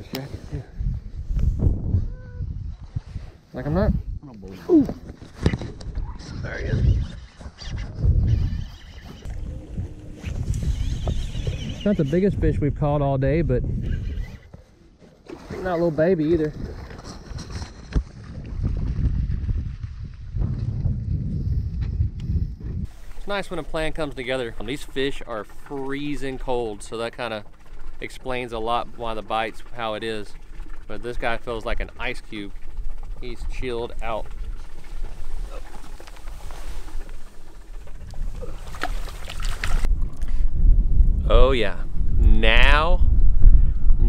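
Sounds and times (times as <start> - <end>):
wind buffeting microphone: 0.0 - 14.6, 16.3 - 44.0.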